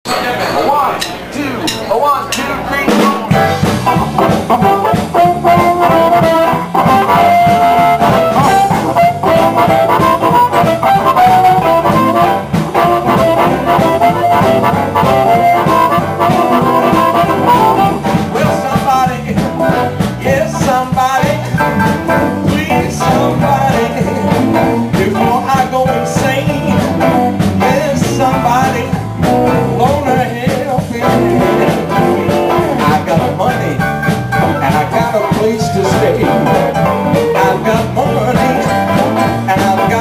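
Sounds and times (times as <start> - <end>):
blues band playing: 0.1 - 40.0
sustained lead melody: 3.3 - 18.7, 31.1 - 40.0.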